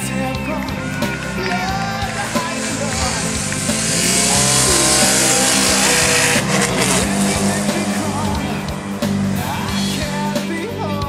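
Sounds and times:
rally car engine passing: 0.0 - 11.0
rock music: 0.0 - 11.0.

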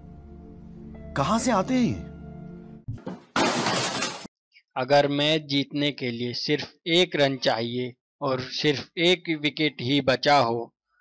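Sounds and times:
glass shattering sound effect: 3.0 - 4.3.

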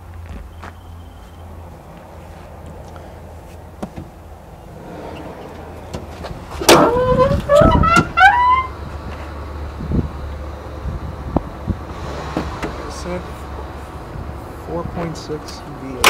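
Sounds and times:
car engine idling: 1.4 - 16.0
rising squeaks: 4.2 - 14.6.

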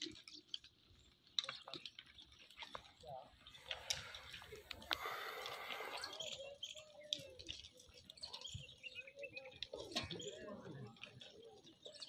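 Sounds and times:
birds chirping: 2.1 - 12.0.

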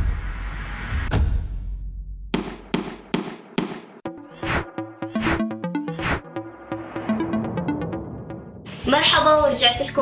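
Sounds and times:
electronic music with a beat: 2.6 - 9.4.

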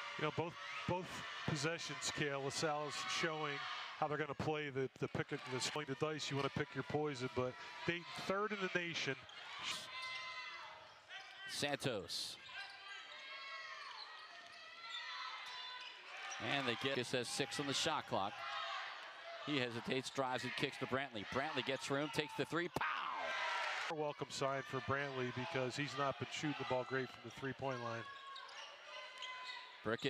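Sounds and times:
faint arena background noise: 0.0 - 30.0.

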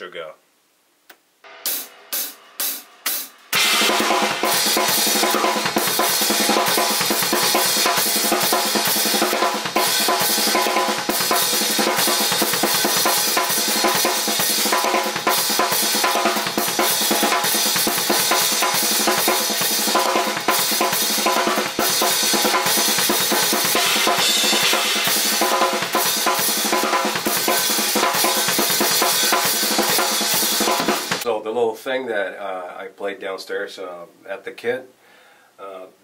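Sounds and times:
acoustic drum kit playing: 1.4 - 31.3.

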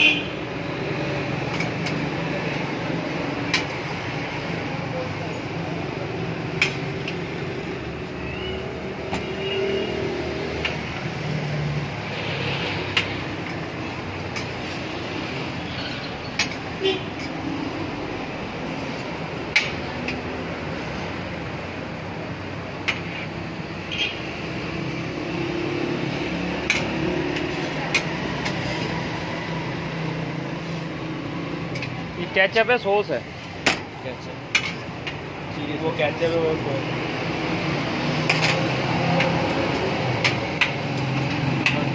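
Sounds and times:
street traffic noise: 0.0 - 41.9.

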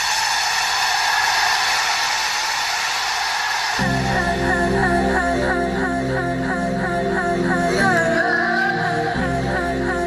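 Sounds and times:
hiss-like noise swell: 0.0 - 5.2.

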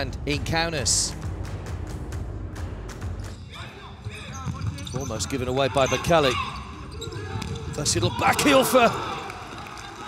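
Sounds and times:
shoes squeaking on court floor: 3.3 - 8.5.

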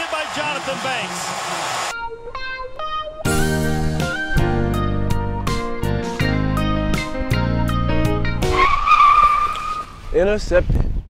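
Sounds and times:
guitar music: 2.0 - 8.5
tire screech sound effect: 8.4 - 10.0.

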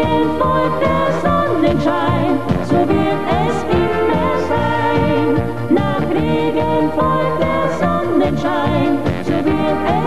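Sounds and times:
accordion: 0.0 - 10.0
brass band with oom-pah bass: 0.0 - 10.0
woman and man singing: 0.0 - 10.0.

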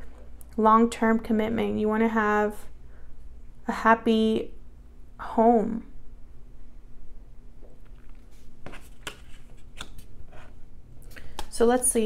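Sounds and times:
cards brushing and tapping on table: 8.1 - 10.5.

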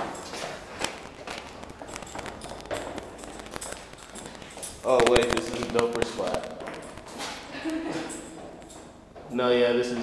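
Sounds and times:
footsteps on concrete stairs: 0.0 - 5.2, 6.0 - 10.0.

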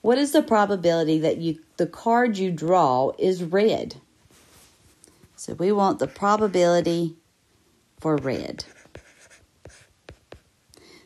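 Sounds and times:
stylus scratching on screen: 5.7 - 7.0, 8.0 - 10.5.

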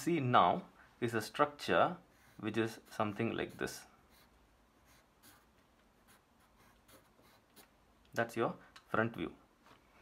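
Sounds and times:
pencil scratching on paper: 2.0 - 7.9.

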